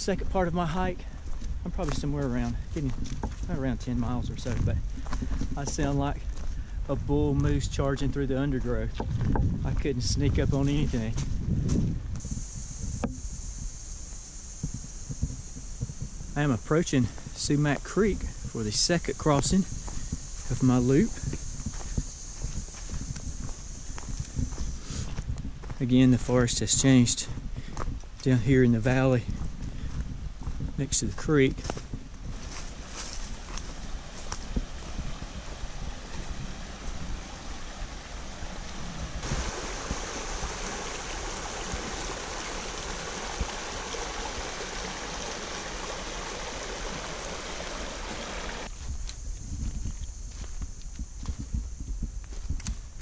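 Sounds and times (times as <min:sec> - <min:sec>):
steady high hiss: 0:00.0 - 0:08.9, 0:12.2 - 0:27.3, 0:32.4 - 0:53.0
footsteps crunching on leaves: 0:00.3 - 0:12.8, 0:16.9 - 0:53.0
creek rushing over stones: 0:33.3 - 0:48.7.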